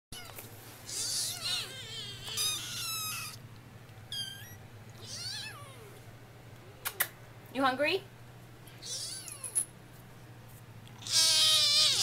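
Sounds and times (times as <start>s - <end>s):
kitten meowing: 0.2s - 3.4s, 4.1s - 5.9s, 8.8s - 9.5s, 11.0s - 12.0s.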